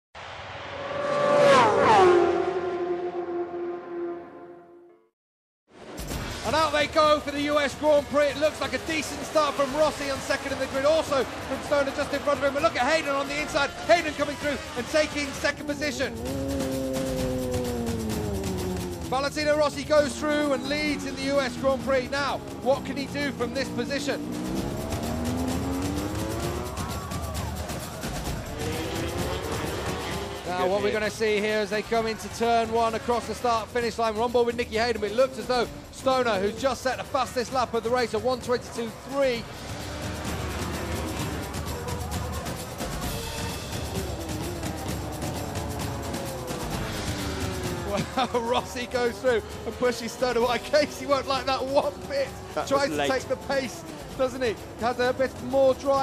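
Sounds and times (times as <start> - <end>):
motorcycles passing at high revs: 0.8 - 4.3, 7.6 - 33.7, 34.3 - 37.6, 38.6 - 56.0
music playing: 5.9 - 56.0.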